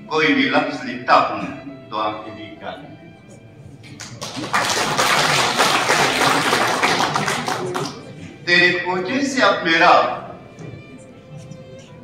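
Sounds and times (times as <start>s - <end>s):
audience applauding: 3.9s - 8.1s.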